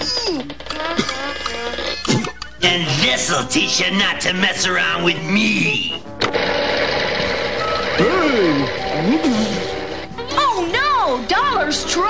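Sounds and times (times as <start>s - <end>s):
background music: 2.0s - 12.0s
mechanical whirring and clatter: 6.2s - 9.0s.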